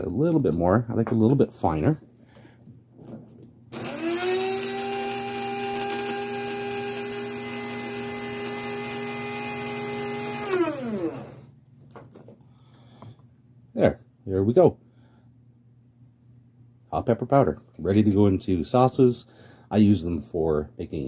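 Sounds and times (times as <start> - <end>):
coffee grinder whining: 3.7 - 11.5.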